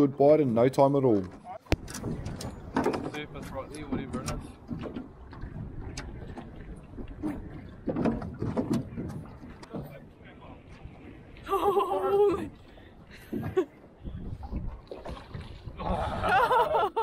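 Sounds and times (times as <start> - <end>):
knocks in boat: 1.7 - 10.0.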